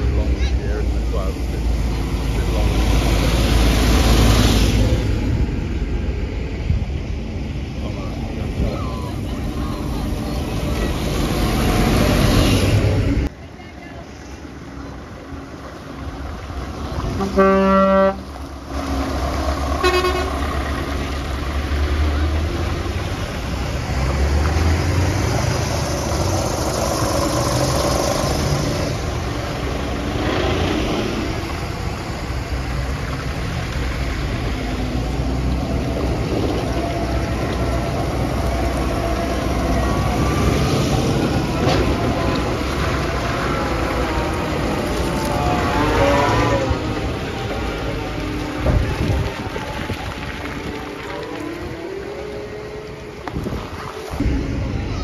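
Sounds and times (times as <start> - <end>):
tractor and lorry engines: 0.0 - 55.0
loud horn blast: 17.1 - 18.3, 19.8 - 20.6.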